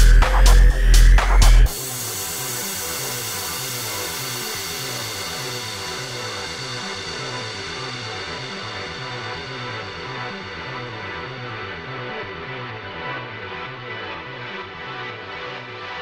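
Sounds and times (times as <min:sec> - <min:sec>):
repeating bass pattern: 0:00.0 - 0:11.9.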